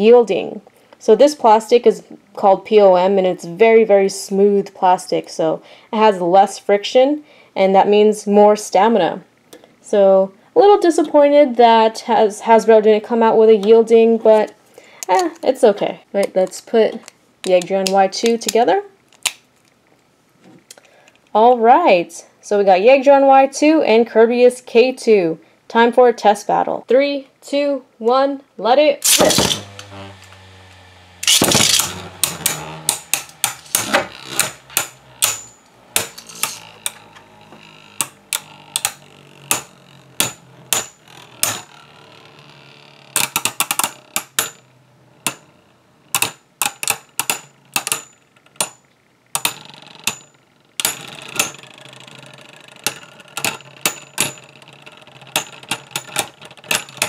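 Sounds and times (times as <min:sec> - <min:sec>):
spinning tops clashing: 0:29.0 - 0:29.8, 0:31.2 - 0:36.8.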